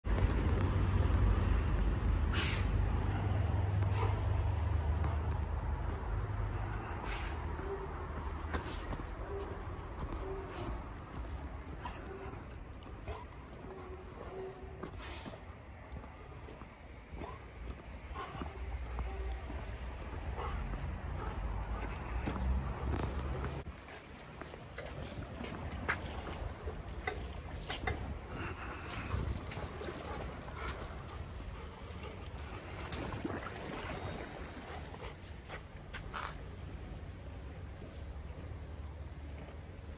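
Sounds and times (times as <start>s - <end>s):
wind buffeting microphone: 25.0s - 35.2s.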